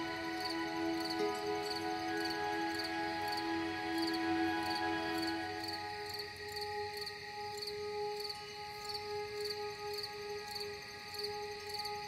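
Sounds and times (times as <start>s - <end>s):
ambient meditation music: 0.0s - 12.0s
crickets chirping: 0.0s - 12.0s.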